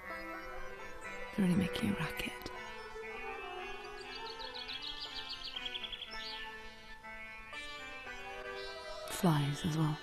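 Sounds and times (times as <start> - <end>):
bird chirping: 0.0 - 10.0
droning music: 0.0 - 10.0.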